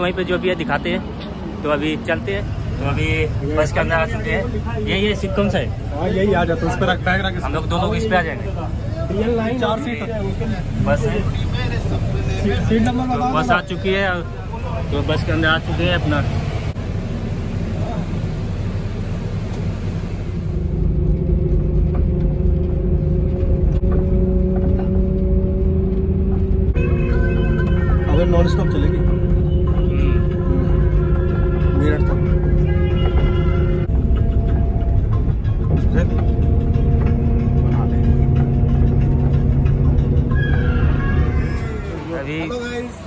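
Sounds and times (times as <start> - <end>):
bus engine hum: 0.0 - 43.0
bus road rumble: 0.0 - 43.0
music playing: 20.8 - 43.0.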